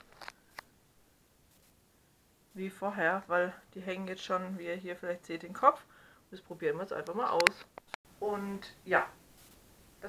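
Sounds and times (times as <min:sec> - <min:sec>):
faint rustle: 0:01.4 - 0:02.7, 0:09.2 - 0:09.8.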